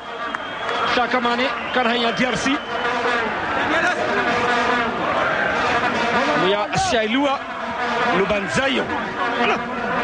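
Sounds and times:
stadium crowd noise: 0.0s - 10.0s
vuvuzelas droning: 0.0s - 10.0s
commentator speaking: 6.1s - 9.7s.

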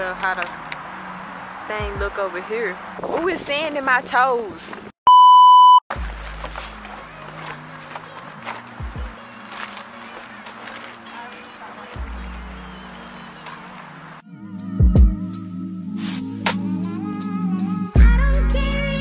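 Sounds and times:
high-pitched test tone beep: 5.1s - 5.8s
background music with deep bass: 5.9s - 19.0s.

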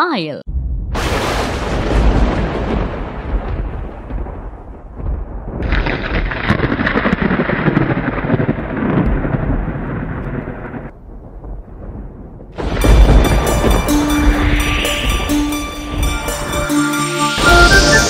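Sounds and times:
low thunder rumble: 0.5s - 16.5s
thunderclap: 0.5s - 16.7s
steady rain: 1.0s - 14.6s.

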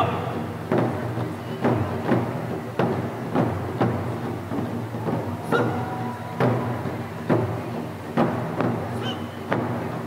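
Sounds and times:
heavy drum beats: 0.0s - 10.0s.

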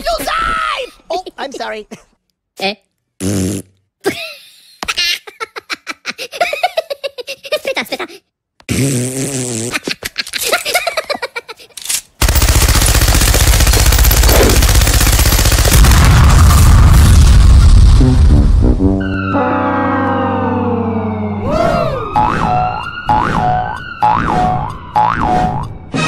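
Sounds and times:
machine-gun fire: 12.2s - 17.3s
explosion: 15.7s - 19.0s.

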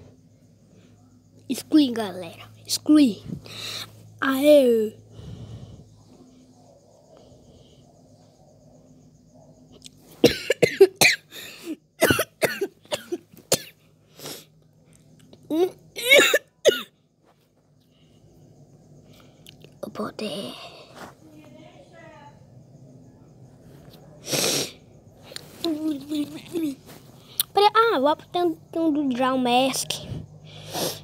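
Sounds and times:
loud burst of breath: 5.0s - 6.0s, 24.2s - 24.8s, 30.4s - 31.0s
person coughing harshly: 10.2s - 13.8s, 16.0s - 16.9s.

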